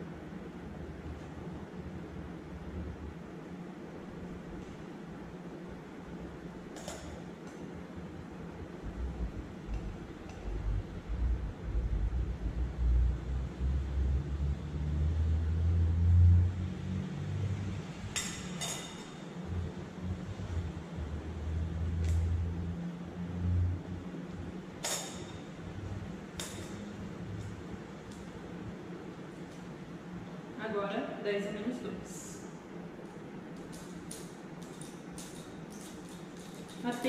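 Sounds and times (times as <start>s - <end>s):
low rumble: 8.8s - 17.7s
glassware clinking and tapping: 18.2s - 19.2s, 24.8s - 25.4s.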